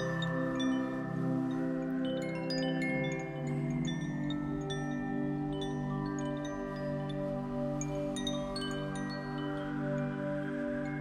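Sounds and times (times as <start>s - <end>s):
wind chimes ringing: 0.0s - 11.0s.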